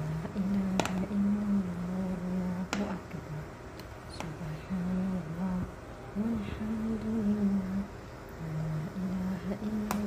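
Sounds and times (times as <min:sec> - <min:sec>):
person humming: 0:00.0 - 0:03.5, 0:04.1 - 0:10.0.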